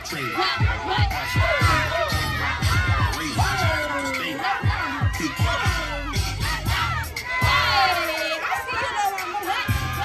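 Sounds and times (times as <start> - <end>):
children shouting and cheering: 0.0 - 10.0
high-pitched yell: 0.0 - 10.0
music with heavy bass: 0.0 - 10.0.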